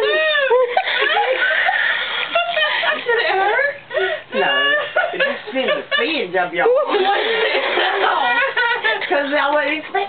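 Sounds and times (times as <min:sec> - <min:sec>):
woman's squealing laughter: 0:00.0 - 0:03.7, 0:04.4 - 0:05.2.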